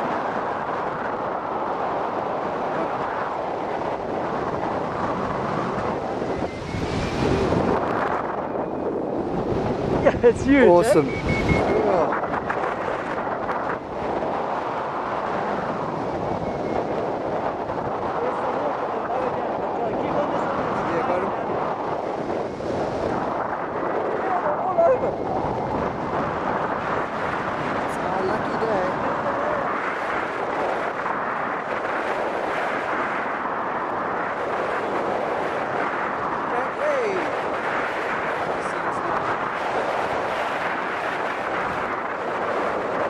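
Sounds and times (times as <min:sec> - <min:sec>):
wind rushing over microphone: 0:00.0 - 0:43.0.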